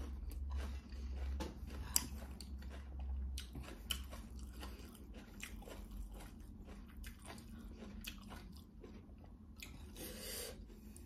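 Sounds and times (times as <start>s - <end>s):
wet chewing: 0.0s - 11.0s.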